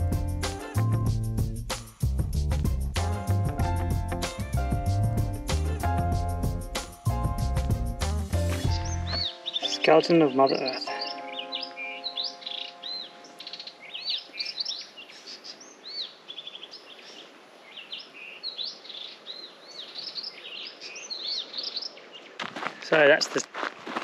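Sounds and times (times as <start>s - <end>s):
wild birds chirping: 8.3s - 23.2s.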